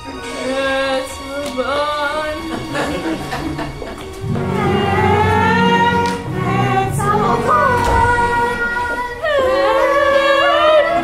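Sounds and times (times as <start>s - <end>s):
instrumental accompaniment: 0.0s - 11.0s
child singing: 4.4s - 11.0s.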